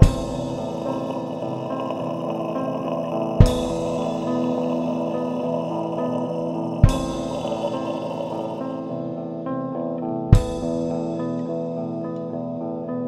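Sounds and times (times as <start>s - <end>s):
metal music sustained chords: 0.0s - 13.0s.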